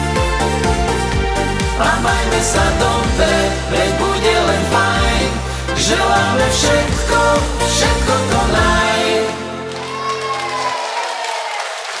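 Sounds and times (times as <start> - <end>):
bass: 0.0 - 10.8
audience clapping: 9.0 - 12.0.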